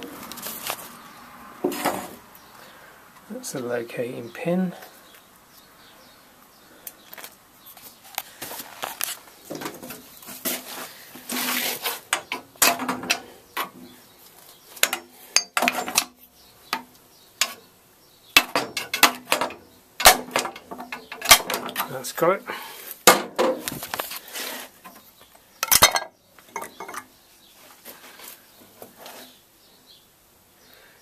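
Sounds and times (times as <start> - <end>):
sharp metal taps: 18.4 - 21.9
metal parts clinking and scraping: 18.5 - 22.0.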